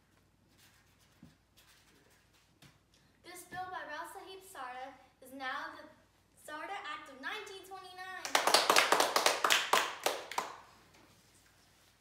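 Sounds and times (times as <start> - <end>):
people clapping: 8.2 - 10.7.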